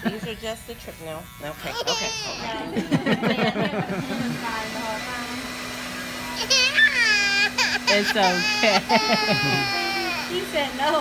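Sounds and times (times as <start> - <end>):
electric hair clippers humming: 0.0 - 11.0
toddler crying: 1.6 - 2.8, 6.3 - 10.5.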